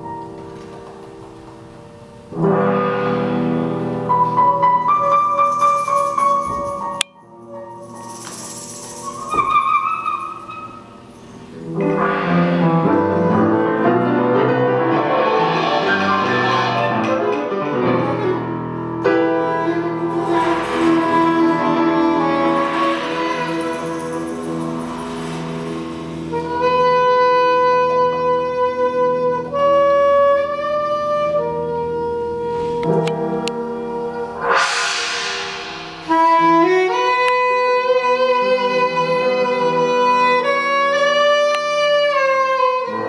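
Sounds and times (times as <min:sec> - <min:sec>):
grand piano notes: 0:00.0 - 0:43.0
loud sustained band chord: 0:33.5 - 0:37.5.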